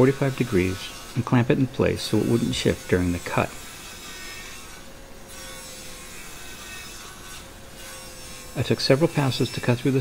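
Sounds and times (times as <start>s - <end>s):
miter saw cutting wood: 0.0s - 10.0s.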